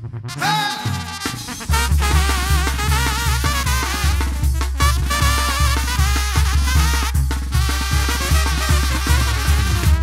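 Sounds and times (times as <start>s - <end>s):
sousaphone bass line: 0.0s - 10.0s
drum and percussion strokes: 0.3s - 10.0s
horn lines: 0.3s - 10.0s.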